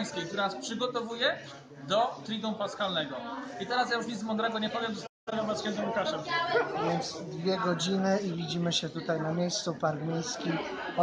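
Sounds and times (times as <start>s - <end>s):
background chatter in large room: 0.0s - 11.0s
people talking: 0.0s - 11.0s.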